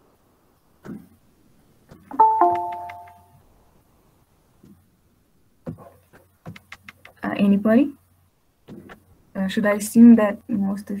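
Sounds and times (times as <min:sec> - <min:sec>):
two-note descending chime: 0:02.1 - 0:03.3.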